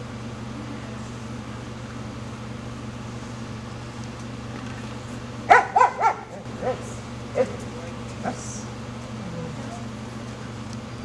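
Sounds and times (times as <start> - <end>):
dog barking: 5.5 - 7.6.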